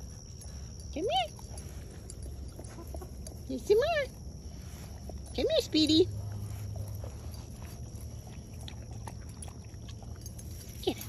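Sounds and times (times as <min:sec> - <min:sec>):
steady low hum: 0:00.0 - 0:11.0
chickens clucking: 0:02.4 - 0:03.4.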